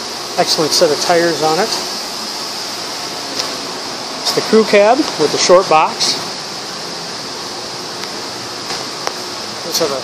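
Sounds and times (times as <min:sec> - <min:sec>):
ventilation fan rushing: 0:00.0 - 0:10.0.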